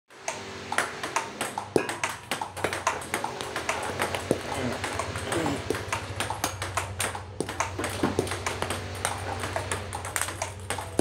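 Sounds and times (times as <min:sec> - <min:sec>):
table tennis balls clicking: 0:00.2 - 0:11.0.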